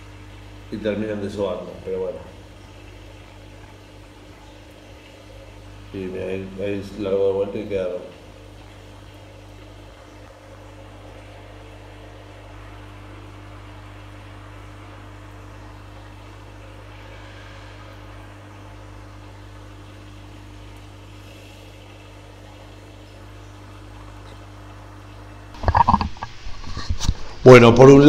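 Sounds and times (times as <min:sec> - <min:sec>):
low mechanical hum: 0:00.0 - 0:28.0.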